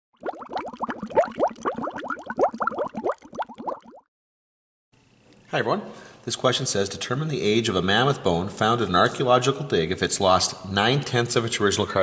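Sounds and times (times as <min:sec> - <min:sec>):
water bubbling: 0:00.2 - 0:04.1.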